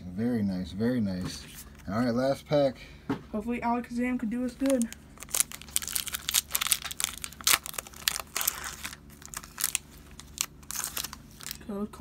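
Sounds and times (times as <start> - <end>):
foil wrapper tearing and crinkling: 4.5 - 11.7.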